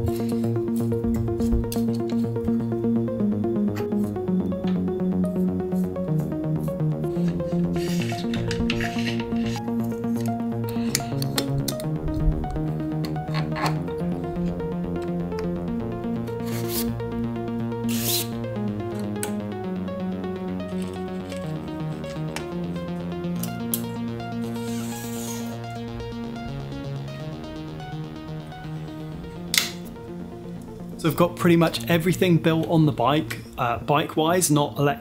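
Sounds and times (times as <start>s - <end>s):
electronic music: 0.0s - 34.5s
bike parts rubbing and clicking: 7.0s - 12.0s, 13.0s - 13.9s, 16.2s - 17.0s, 17.8s - 19.4s, 23.4s - 25.6s.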